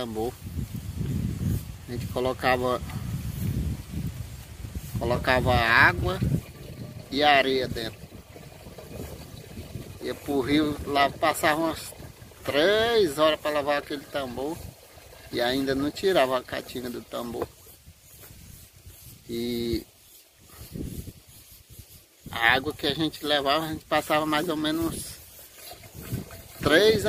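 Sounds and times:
water trickling into plastic jug: 0:05.0 - 0:17.6, 0:24.6 - 0:27.0.

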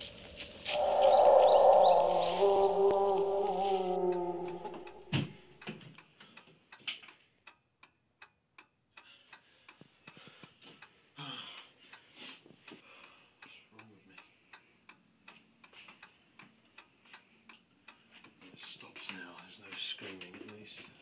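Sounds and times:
loud pitched drone: 0:00.0 - 0:05.4
clock ticking: 0:04.0 - 0:21.0.

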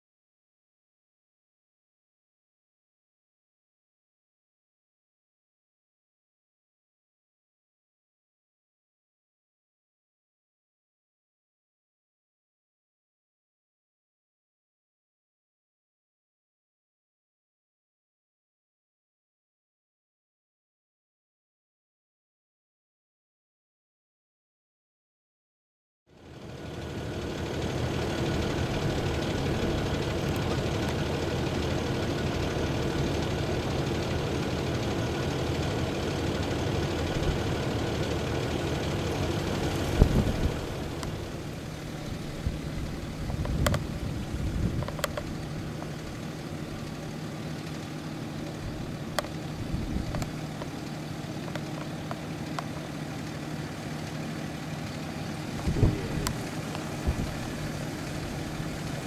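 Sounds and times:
engine running at low revs: 0:26.1 - 0:59.0.

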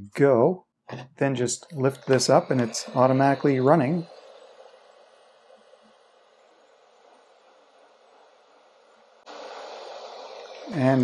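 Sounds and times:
hot air gun fan hissing: 0:01.4 - 0:11.0.

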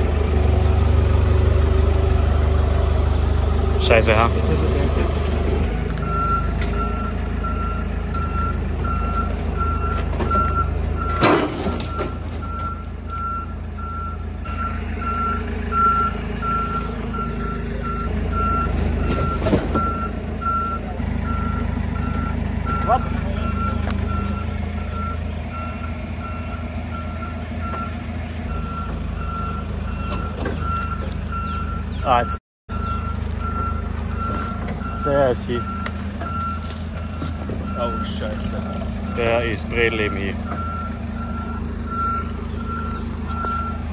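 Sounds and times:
forklift engine running: 0:00.0 - 0:43.9
backup alarm beeping: 0:06.0 - 0:43.9.

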